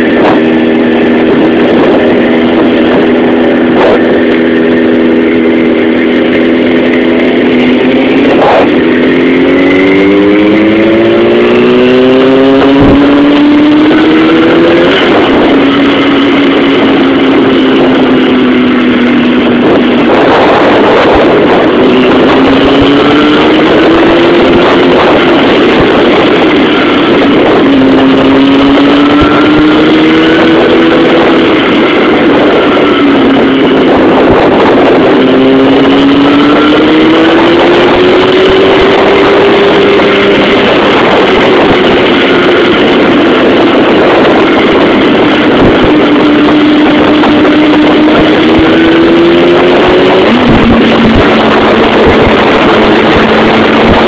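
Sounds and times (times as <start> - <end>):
motorcycle engine revving: 0.0 - 54.0
wind and road rush: 0.0 - 54.0.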